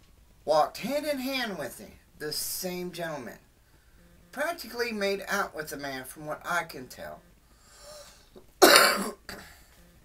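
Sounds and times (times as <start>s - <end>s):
man coughing: 8.6s - 9.6s.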